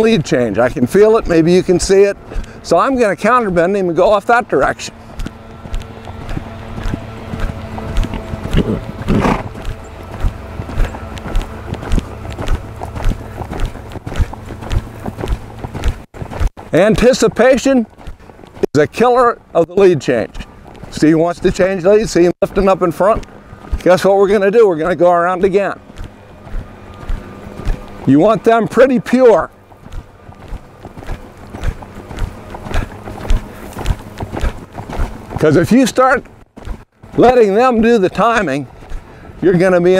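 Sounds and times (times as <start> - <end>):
low hum: 0.0 - 39.8
hoofbeats on sand: 0.0 - 39.9.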